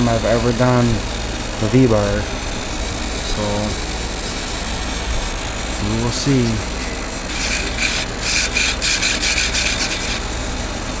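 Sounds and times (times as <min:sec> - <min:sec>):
scratchy rubbing strokes: 0:07.3 - 0:10.3.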